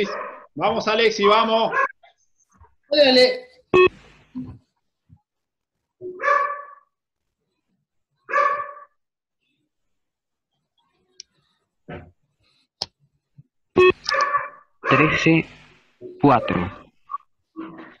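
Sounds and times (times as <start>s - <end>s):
dog barking: 0.0s - 0.5s, 1.2s - 1.9s, 6.2s - 6.9s, 8.3s - 8.9s, 14.1s - 15.1s.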